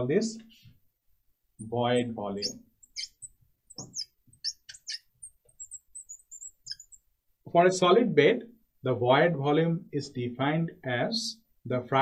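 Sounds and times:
marker squeaking on glass: 1.6s - 7.1s.

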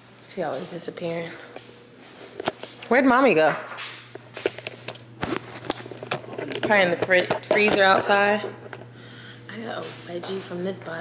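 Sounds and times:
footsteps indoors: 0.0s - 11.0s
steady low hum: 0.0s - 11.0s.

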